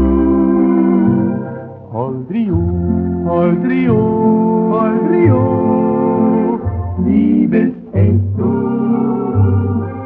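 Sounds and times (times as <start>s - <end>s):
organ playing slow waltz: 0.0s - 10.0s
person singing: 0.0s - 10.0s.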